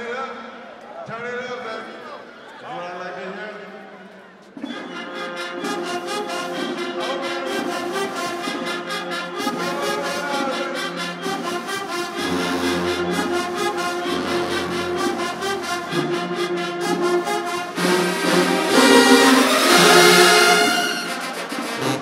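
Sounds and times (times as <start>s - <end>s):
brass chords: 4.6s - 22.0s.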